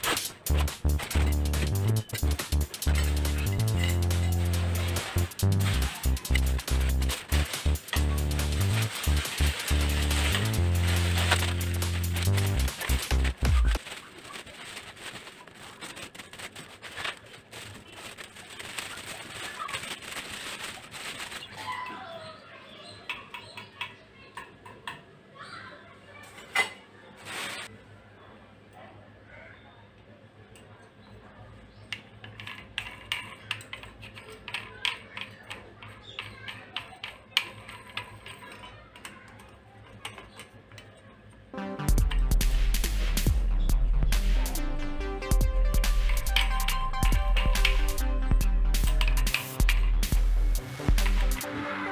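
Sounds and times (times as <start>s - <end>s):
loud music: 0.0s - 13.8s, 41.6s - 51.9s
plastic packaging crinkling: 0.0s - 22.0s, 27.2s - 27.7s, 44.4s - 51.5s.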